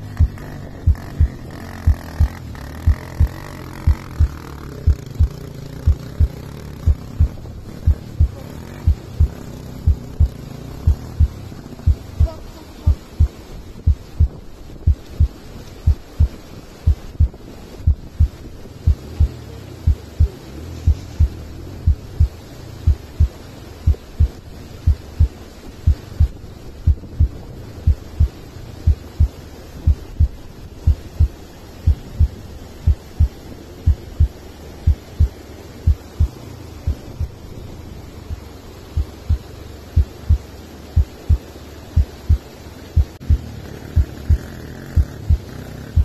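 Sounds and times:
heartbeat-like double thumps: 0.0 - 34.3, 34.9 - 37.3, 39.0 - 41.4, 42.0 - 46.0
river water rushing: 0.0 - 46.0.

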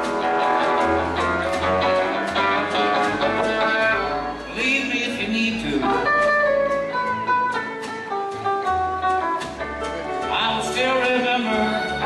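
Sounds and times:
acoustic guitar picking melody: 0.0 - 12.0
bass notes: 0.0 - 12.0.

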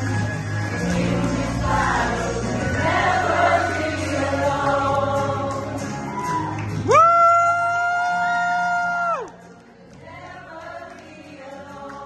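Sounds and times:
group singing gospel: 0.0 - 6.2, 10.0 - 12.0
instrumental accompaniment with bass: 0.0 - 9.7.

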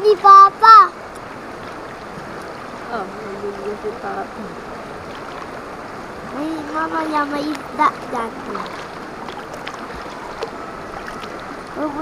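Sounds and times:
river water rushing over rocks: 0.0 - 12.0.

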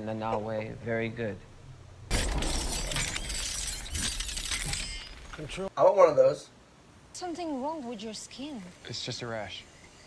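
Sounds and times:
loud noisy crash: 2.1 - 4.9.

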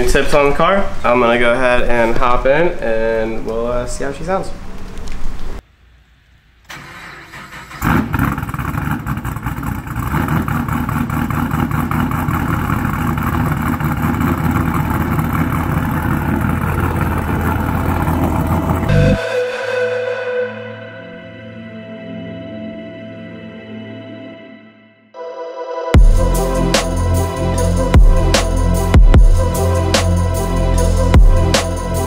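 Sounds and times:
car engine starting and running: 6.6 - 19.7, 26.0 - 32.0
soft ambient music: 18.9 - 32.0.

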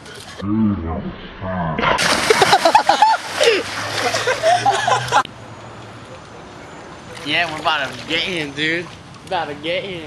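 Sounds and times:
rush of water in pool: 2.0 - 5.2.

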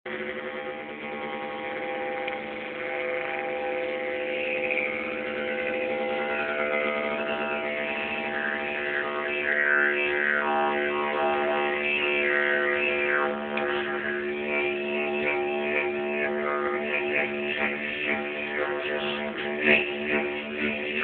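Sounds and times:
didgeridoo drone: 0.1 - 21.0.

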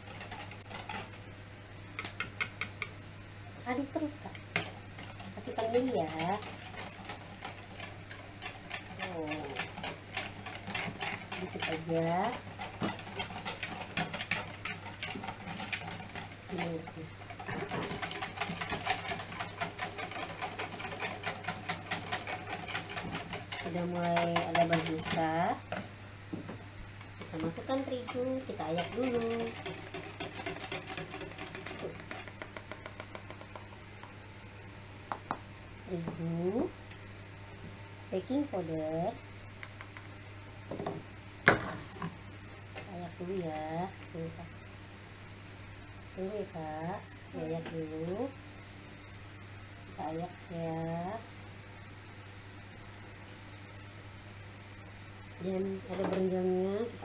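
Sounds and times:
whisk beating batter in plastic bowl: 0.0 - 1.2, 3.7 - 25.8, 27.0 - 34.1
whisk clicking against plastic bowl: 17.7 - 25.8, 27.2 - 33.7.

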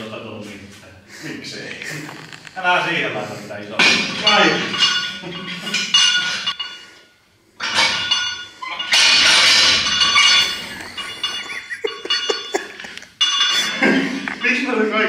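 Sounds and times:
weight plates clanking: 7.6 - 14.7.

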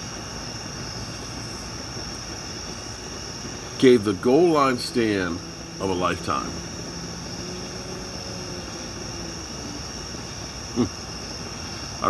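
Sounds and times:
crickets chirping: 0.0 - 12.0
gas flame rushing: 0.0 - 12.0.

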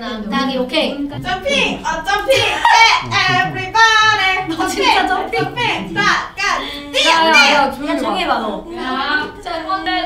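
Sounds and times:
young woman singing: 1.1 - 7.9.

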